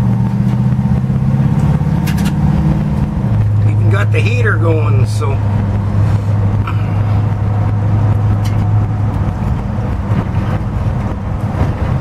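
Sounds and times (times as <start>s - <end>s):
low engine drone from inside cab: 0.0s - 12.0s.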